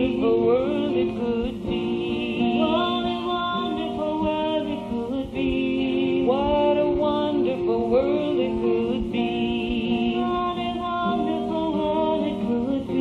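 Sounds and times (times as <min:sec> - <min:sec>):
instrumental backing: 0:00.0 - 0:13.0
voices singing slow song: 0:00.0 - 0:13.0.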